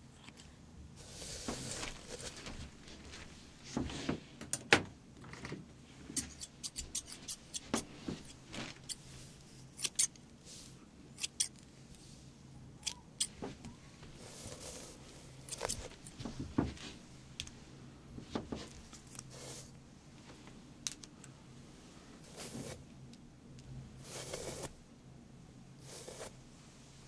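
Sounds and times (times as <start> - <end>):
soft rustle: 1.0 - 4.4, 7.1 - 11.0, 13.3 - 20.7, 21.5 - 22.9, 25.8 - 27.0
scissors snipping: 9.8 - 10.2.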